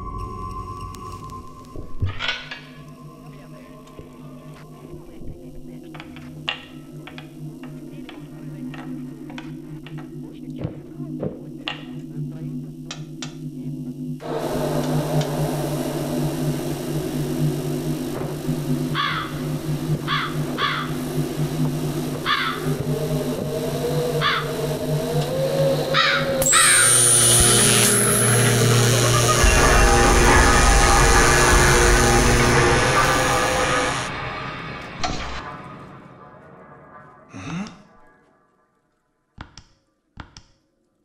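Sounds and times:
low film score drone: 0.0 - 38.5
deep rumble: 14.2 - 26.4, 27.0 - 38.0
noisy swell with rising whine: 14.2 - 37.3
crow cawing: 19.0 - 19.4, 20.1 - 21.0, 22.2 - 22.7, 24.2 - 24.7, 25.9 - 26.9.

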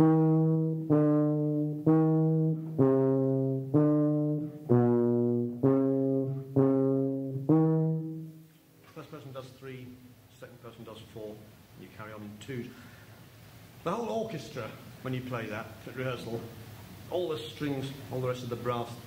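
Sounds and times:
tuba playing sustained notes: 0.0 - 8.5.

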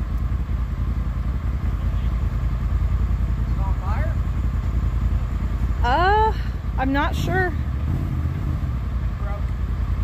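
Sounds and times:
engine running at low revs: 0.0 - 10.0.

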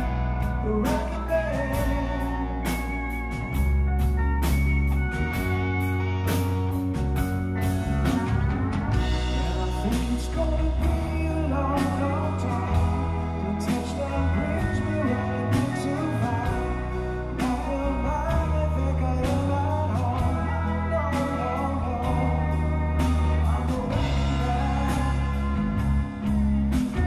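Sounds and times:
drums and cymbal hits: 0.0 - 13.1
bass guitar: 0.0 - 27.0
electric guitar: 0.0 - 27.0
lap steel guitar sliding lead: 0.0 - 27.0.

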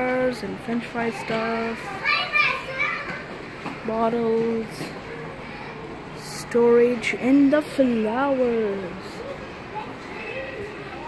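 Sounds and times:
young child's high-pitched voice: 0.8 - 4.5, 6.9 - 11.0.

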